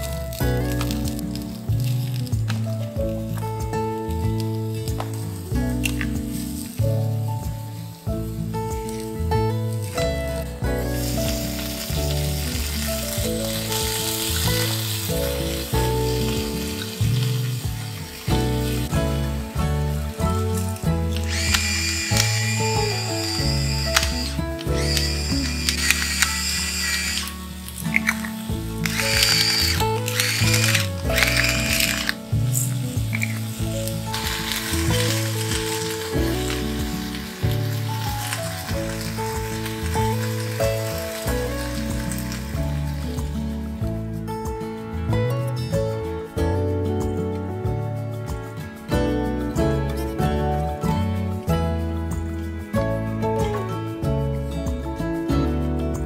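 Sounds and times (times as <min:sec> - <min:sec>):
egg and vegetables sizzling: 0:00.0 - 0:43.8
background music: 0:00.0 - 0:56.0.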